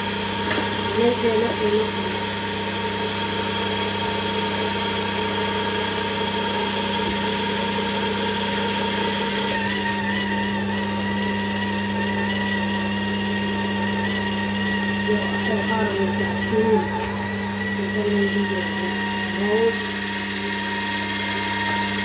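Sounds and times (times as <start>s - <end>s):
juicer motor humming: 0.0s - 22.0s
wavering motor whine: 0.0s - 22.0s.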